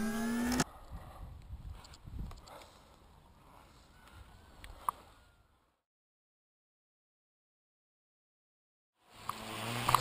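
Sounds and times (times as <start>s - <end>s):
held tone gliding upward: 0.0s - 0.6s.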